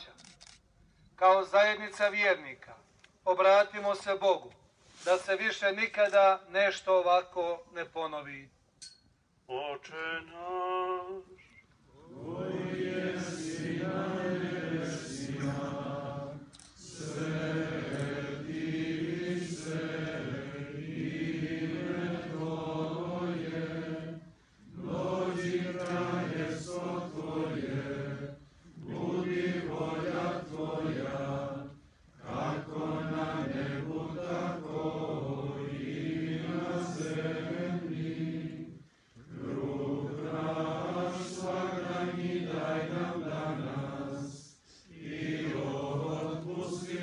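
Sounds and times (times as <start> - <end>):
group chanting a prayer: 12.0 - 47.0.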